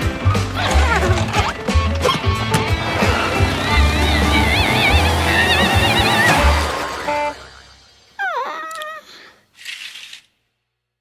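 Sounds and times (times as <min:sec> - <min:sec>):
lively cartoon music: 0:00.0 - 0:08.1.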